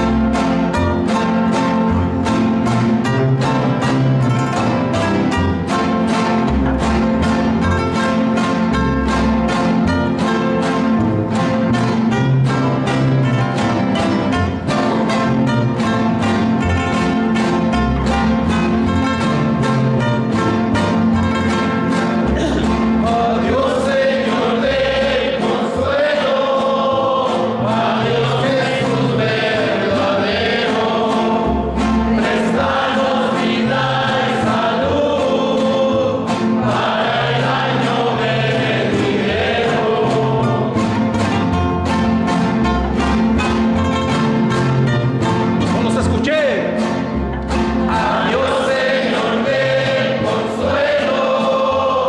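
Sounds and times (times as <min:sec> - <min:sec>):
acoustic guitars: 0:00.0 - 0:52.0
plucked upright bass: 0:00.0 - 0:52.0
men singing in harmony: 0:22.4 - 0:41.0, 0:47.8 - 0:52.0.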